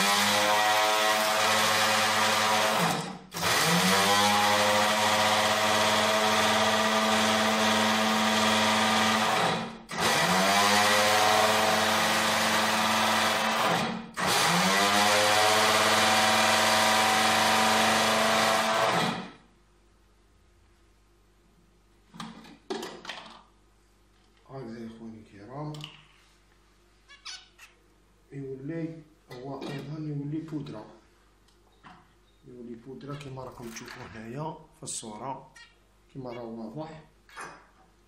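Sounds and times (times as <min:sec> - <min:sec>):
electric kitchen grinder running: 0:00.0 - 0:19.3.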